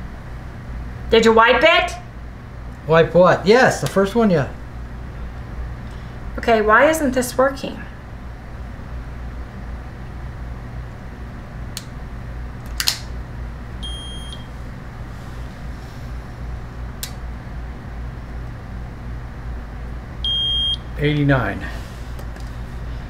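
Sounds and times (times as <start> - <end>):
steady low hum: 0.0 - 23.0
glucose meter beeping: 13.8 - 14.5, 20.2 - 20.9.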